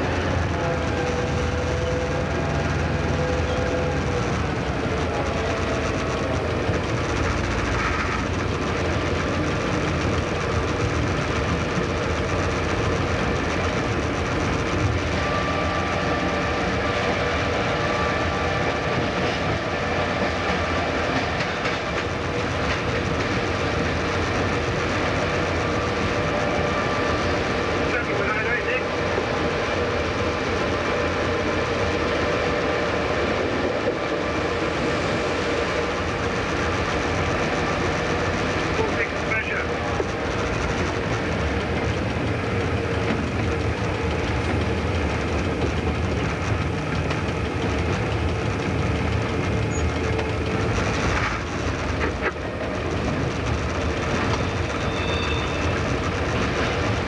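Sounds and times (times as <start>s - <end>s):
diesel locomotive engine running: 0.0s - 57.0s.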